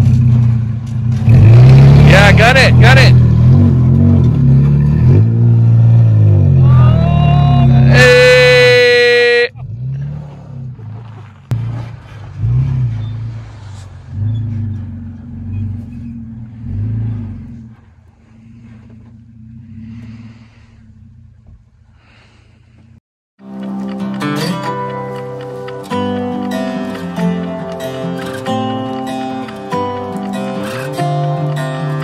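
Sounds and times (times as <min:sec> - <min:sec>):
pickup engine revving: 0:00.0 - 0:08.6, 0:09.5 - 0:22.2.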